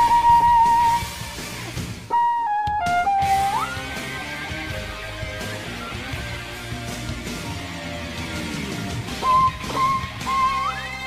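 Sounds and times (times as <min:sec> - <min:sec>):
electric violin sliding notes: 0:00.0 - 0:01.2, 0:02.1 - 0:04.0, 0:09.2 - 0:11.0.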